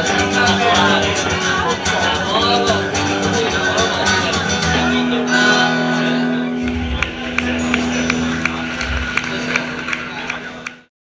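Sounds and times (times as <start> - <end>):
rockabilly swing music: 0.0 - 10.8
double bass thumps: 6.6 - 10.1.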